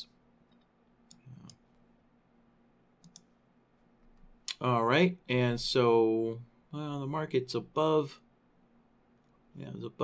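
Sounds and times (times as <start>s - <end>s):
computer mouse clicks: 0.5s - 1.6s, 3.0s - 3.4s.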